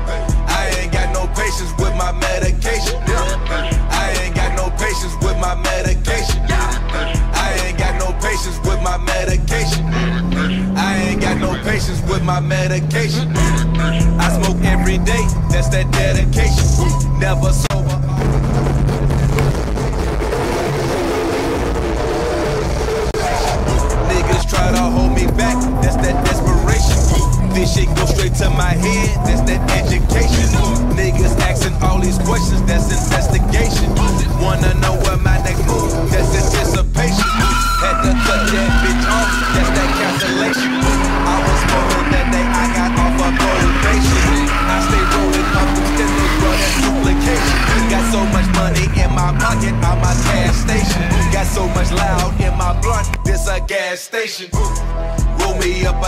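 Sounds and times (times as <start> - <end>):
hip-hop backing music: 0.0 - 56.0
car engine running: 0.3 - 53.5
tyres squealing: 23.2 - 53.1.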